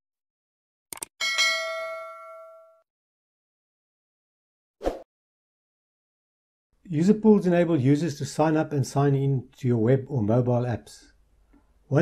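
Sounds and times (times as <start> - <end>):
notification bell ding: 1.2 - 2.8.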